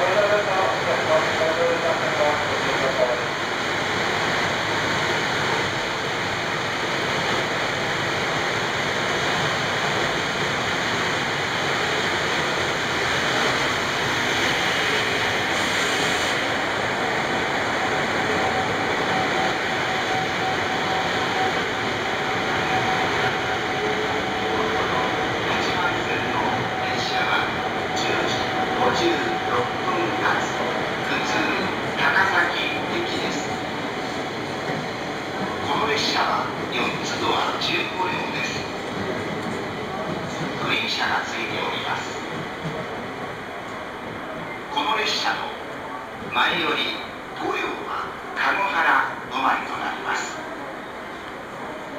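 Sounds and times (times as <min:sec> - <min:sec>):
train running noise: 0:00.0 - 0:51.9.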